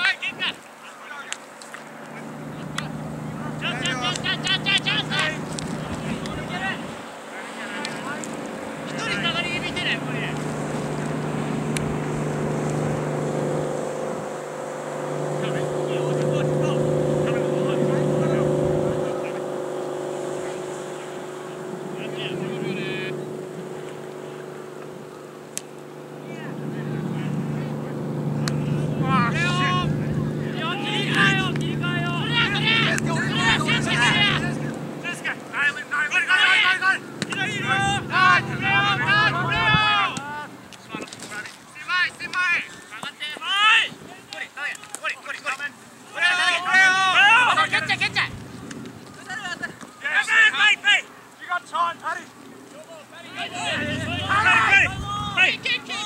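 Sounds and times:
engine droning: 0.0s - 42.1s, 45.7s - 50.6s, 53.1s - 56.0s
distant players shouting: 0.0s - 56.0s.

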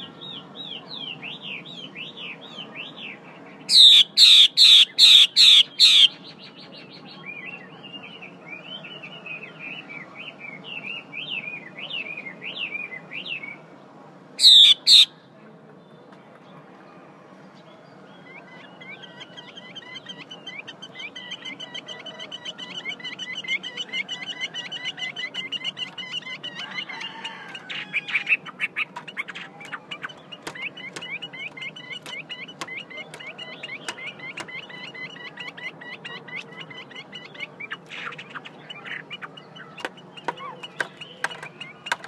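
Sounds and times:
bird chattering notes: 3.7s - 6.5s, 14.4s - 15.1s, 18.6s - 42.0s.

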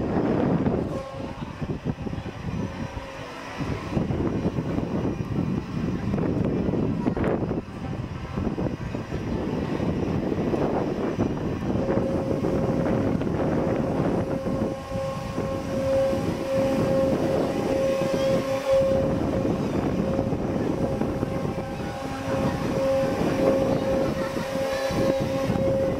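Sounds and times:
ride rumbling: 0.0s - 25.9s
steady high tone: 0.0s - 25.9s.

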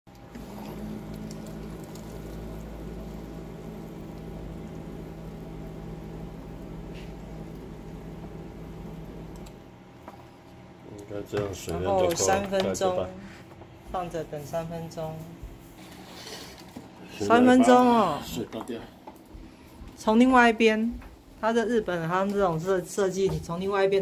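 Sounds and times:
pump humming: 0.1s - 10.4s
hot water pouring into cup: 0.2s - 9.5s.

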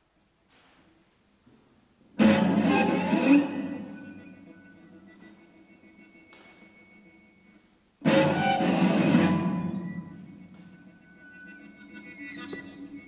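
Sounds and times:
solo contemporary classical instrument: 0.5s - 13.0s.

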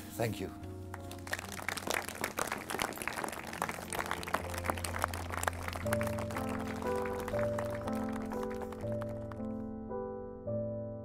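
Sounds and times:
music of slow held chords: 0.0s - 11.0s
crowd applauding: 0.9s - 9.5s.

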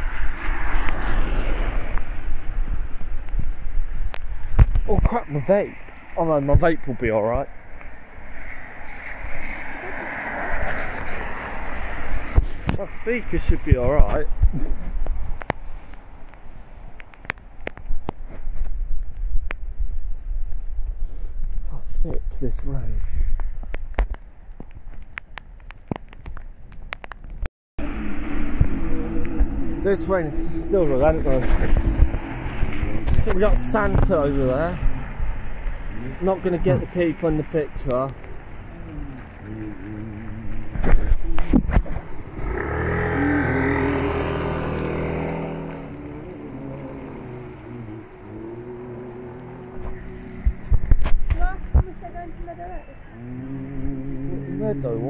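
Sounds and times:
wind buffeting microphone: 0.0s - 55.0s
car tyres hissing on wet road: 9.0s - 12.6s
raindrops ticking on microphone: 23.4s - 27.5s
steady rumble with low hum: 27.8s - 33.6s
heavy rain: 42.4s - 51.8s.

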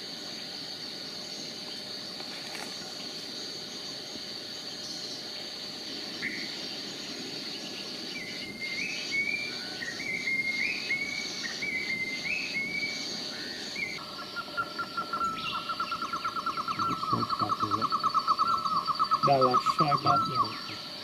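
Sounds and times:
high insect-like buzz: 0.0s - 21.0s
rapid pulsing bird trill: 4.6s - 21.0s
birdsong whistled notes: 6.1s - 21.0s.

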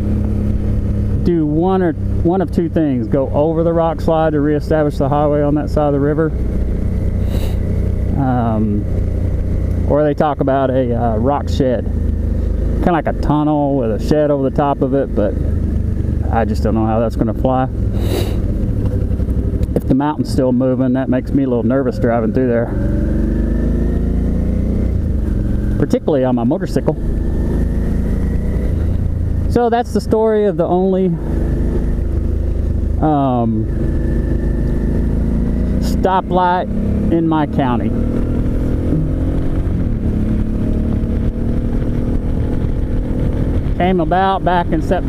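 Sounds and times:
motorcycle engine running: 0.0s - 45.0s
brief hiss: 18.0s - 18.4s
wind rumble on microphone: 37.7s - 45.0s.

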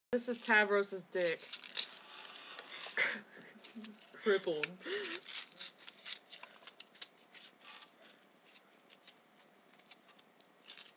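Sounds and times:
small object rustling and scraping: 0.2s - 10.9s.

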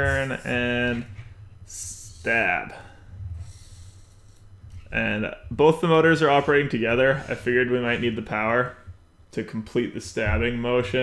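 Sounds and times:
faint room hiss: 0.0s - 11.0s
low steady hum: 0.0s - 11.0s.

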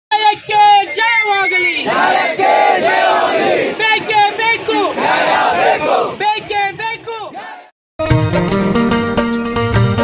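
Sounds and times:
crowd of men shouting slogans: 0.4s - 7.7s.

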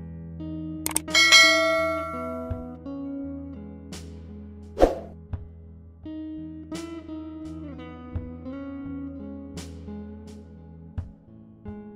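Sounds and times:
notification bell ding: 0.9s - 2.7s.

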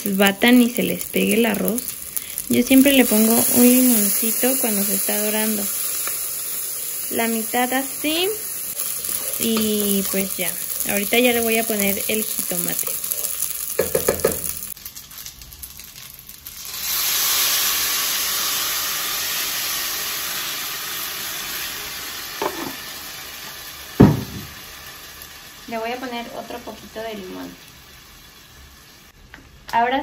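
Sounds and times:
loud sizzle: 0.0s - 30.0s
wooden spoon stirring rice: 8.8s - 11.0s, 12.1s - 14.3s
sharp knock: 24.0s - 24.5s.

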